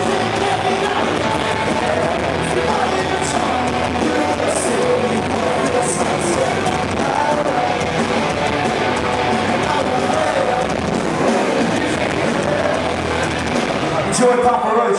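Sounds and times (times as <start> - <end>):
crowd voices: 0.0 - 14.9
heavy rock band playing: 0.0 - 14.9.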